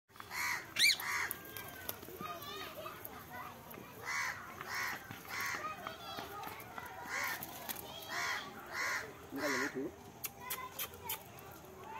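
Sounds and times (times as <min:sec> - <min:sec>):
parakeet calling: 0:00.3 - 0:01.3.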